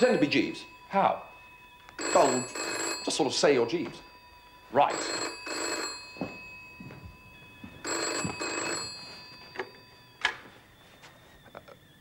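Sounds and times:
telephone bell ringing: 0:00.0 - 0:11.7.

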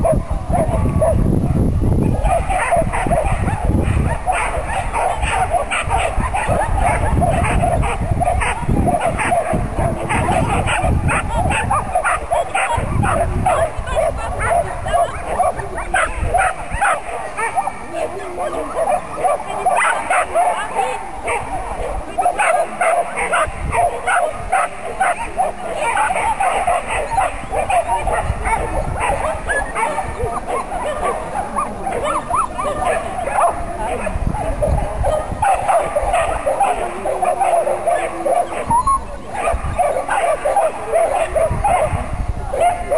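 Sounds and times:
dog barking excitedly: 0:02.0 - 0:42.9.

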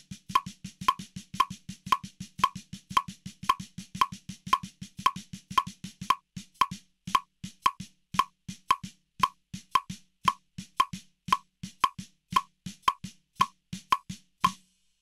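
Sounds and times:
snare drum strokes: 0:00.3 - 0:14.6.

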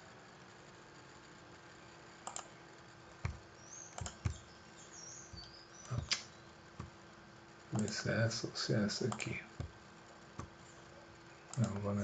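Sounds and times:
faint steady hum: 0:00.0 - 0:12.0
computer mouse clicks: 0:02.2 - 0:02.6, 0:03.2 - 0:04.5, 0:05.3 - 0:07.0, 0:07.7 - 0:08.0, 0:09.1 - 0:09.8, 0:10.4 - 0:10.6, 0:11.5 - 0:11.9.

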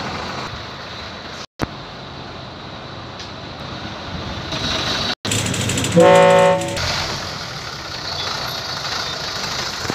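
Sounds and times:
truck diesel engine idling: 0:05.4 - 0:09.9.

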